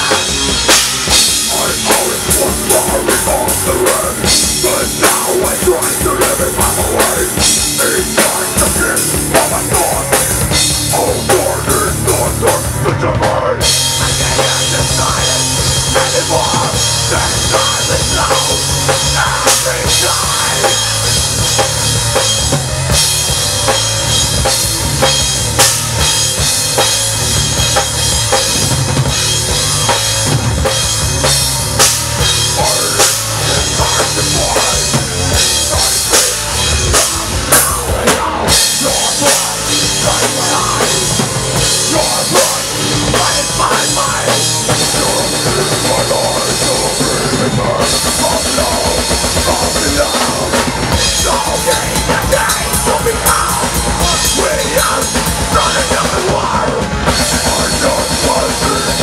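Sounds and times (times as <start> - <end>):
heavy metal band playing: 0.0 - 59.0.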